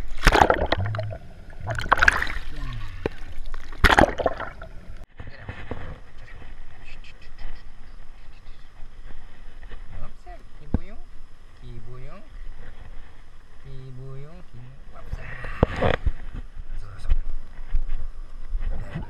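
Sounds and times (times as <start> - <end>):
water splashing and sloshing: 0.0 - 6.7.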